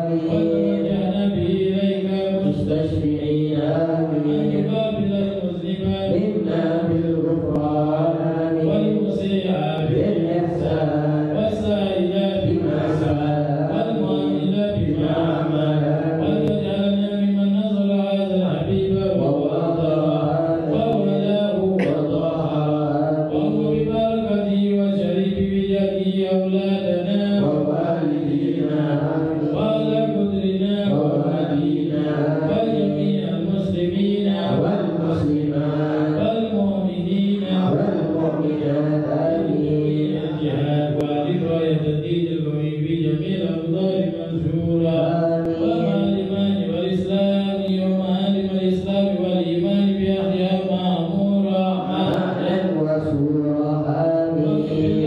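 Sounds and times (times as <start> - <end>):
man leading chant through microphone: 0.0 - 55.0
men chanting together: 0.0 - 55.0.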